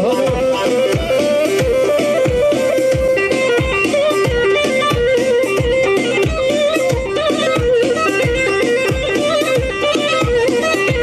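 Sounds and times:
heavy drum beat: 0.0 - 11.0
ornamented lead melody: 0.0 - 11.0.

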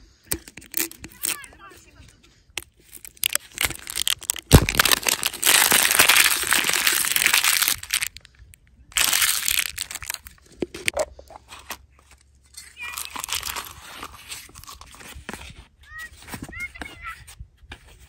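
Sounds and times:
plastic capsule snapping open: 0.3 - 1.4, 2.6 - 8.3, 9.0 - 11.8, 13.0 - 15.0
paper and plastic crinkling: 0.3 - 1.5, 2.6 - 8.3, 8.9 - 15.6.

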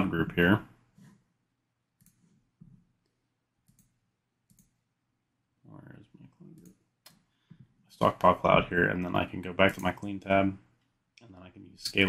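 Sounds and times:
computer mouse clicks: 2.0 - 4.8, 6.4 - 7.3.

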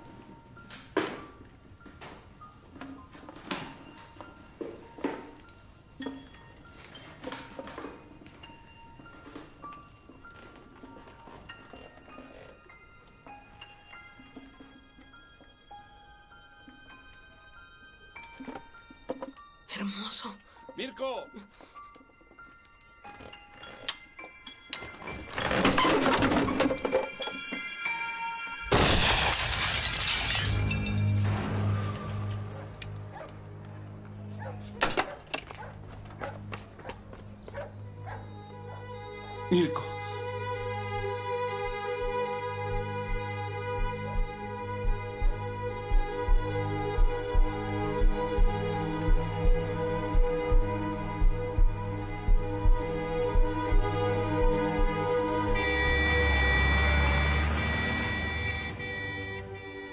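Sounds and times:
low music drone: 27.1 - 59.9
glass shattering: 28.7 - 32.4
truck engine rumble: 51.3 - 59.9.

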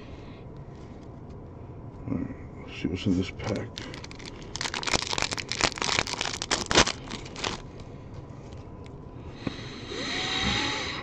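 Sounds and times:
card pack wrapper crinkling and tearing: 3.4 - 7.7.

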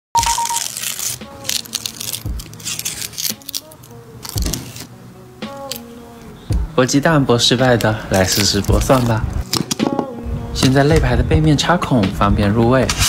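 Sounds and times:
garlic skin crackling and tearing: 0.2 - 4.9, 7.6 - 9.8.

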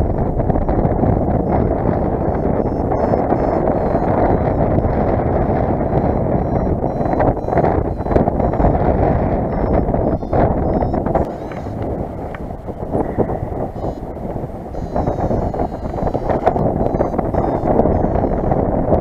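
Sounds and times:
wind rushing over microphone: 0.0 - 19.0
short high beeps: 0.6 - 18.6.

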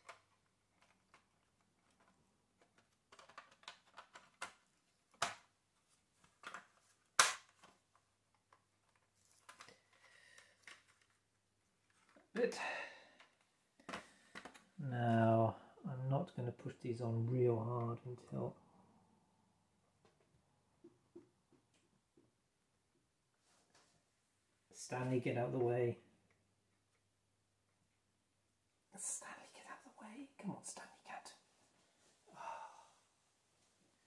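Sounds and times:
plastic snapping: 6.3 - 8.6.

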